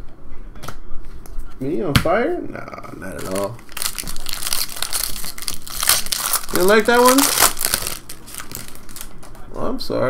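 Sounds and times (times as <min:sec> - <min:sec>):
foil wrapper crinkling: 0:03.1 - 0:09.4.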